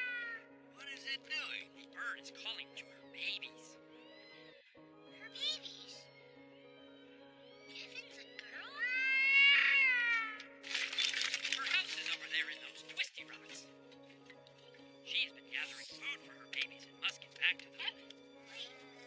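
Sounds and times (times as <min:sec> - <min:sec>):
meow-like cartoon creature calls: 0:00.0 - 0:00.5, 0:08.6 - 0:10.5.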